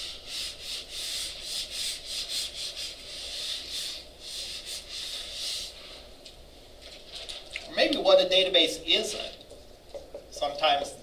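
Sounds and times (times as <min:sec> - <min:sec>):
eraser rubbing whiteboard: 0:00.0 - 0:06.0.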